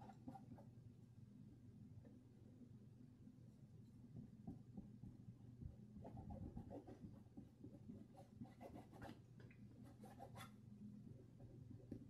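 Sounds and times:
paintbrush scratching on canvas: 6.0 - 7.2, 7.9 - 9.2, 9.8 - 10.6.

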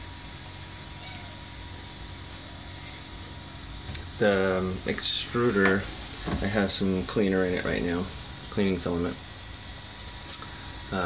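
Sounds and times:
printer fans humming with whine: 1.7 - 11.0.

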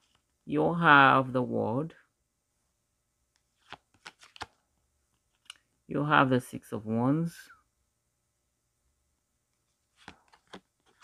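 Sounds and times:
cards clicking and flicking: 3.6 - 4.6, 9.9 - 11.0.

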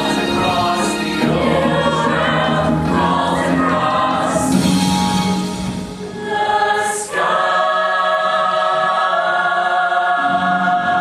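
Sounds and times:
choir singing sustained chords: 0.0 - 11.0.

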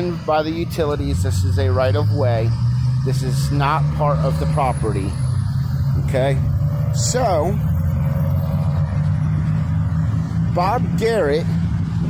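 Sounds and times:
cars passing and idling: 0.0 - 12.0.

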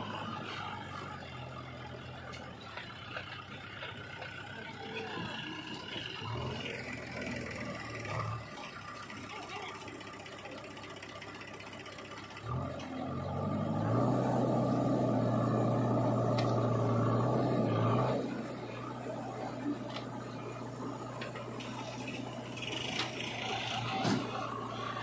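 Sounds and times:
diesel engines running: 0.0 - 25.0.

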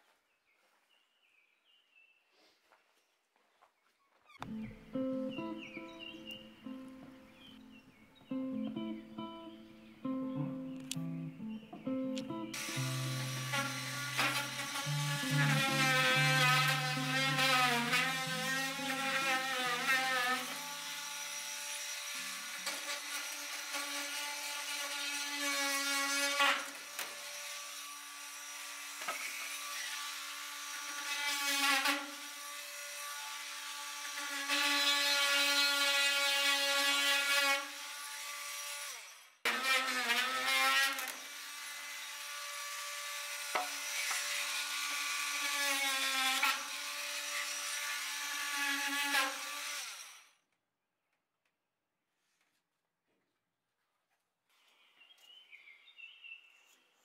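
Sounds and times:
cordless drill drilling into wood: 12.6 - 50.4.

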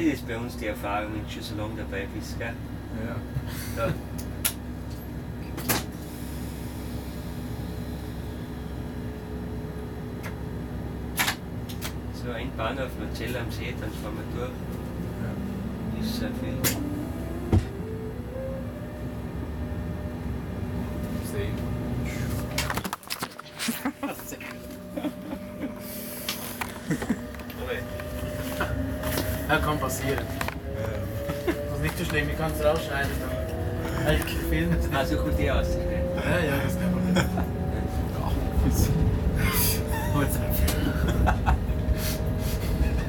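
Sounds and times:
locomotive cab hum: 0.0 - 43.0
train low rumble: 0.0 - 43.0.

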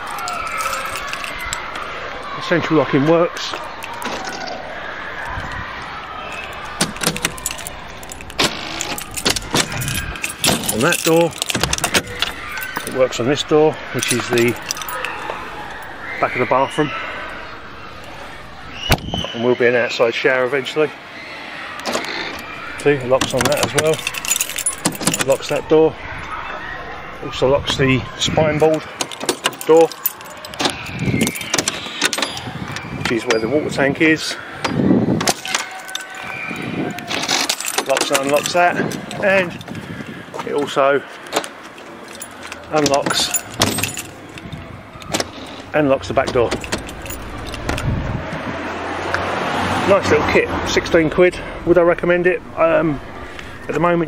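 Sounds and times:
keys jangling: 0.0 - 1.9, 6.3 - 16.1, 21.8 - 26.1, 28.6 - 33.5, 35.2 - 48.5, 50.8 - 53.9
steady background noise: 0.0 - 54.0
door lock clicks: 6.4 - 13.0, 18.0 - 19.3, 21.8 - 25.6, 28.9 - 33.4, 34.6 - 36.3, 41.2 - 48.0
lock solenoid thunk: 6.8 - 12.9, 29.0 - 32.4, 42.5 - 47.9.

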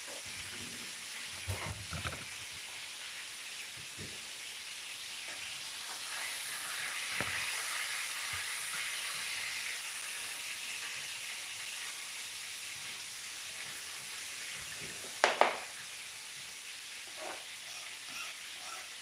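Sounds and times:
vegetables sizzling in oil: 0.0 - 19.0.

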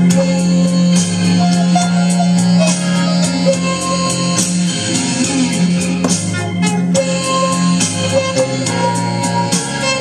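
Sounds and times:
blues guitar: 0.1 - 10.0.

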